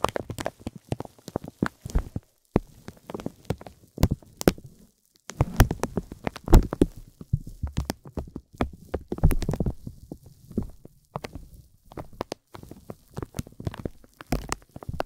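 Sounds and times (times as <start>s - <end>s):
vinyl film crinkling: 0.0s - 15.0s.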